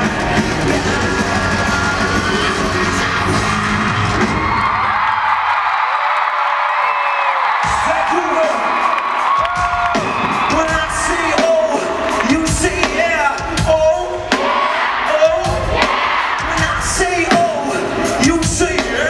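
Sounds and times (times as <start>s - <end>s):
live pop-rock band: 0.0s - 5.0s, 7.6s - 19.0s
crowd cheering and screaming: 0.0s - 13.4s, 14.2s - 19.0s.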